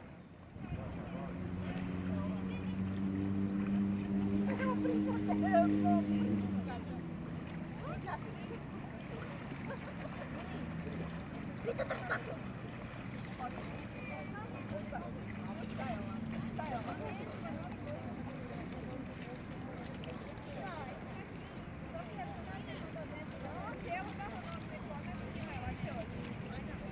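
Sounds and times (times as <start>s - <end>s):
low engine drone: 0.1s - 19.9s.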